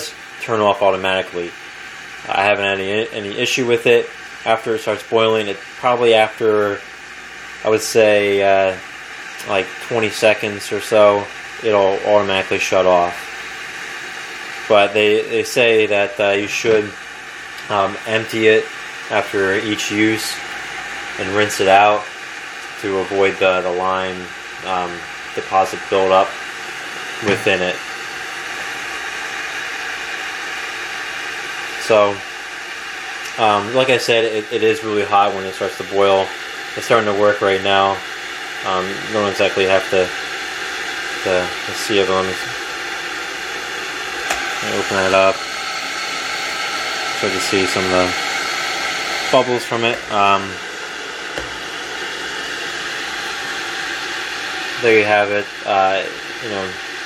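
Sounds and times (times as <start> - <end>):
electric kettle hissing: 0.0 - 57.0.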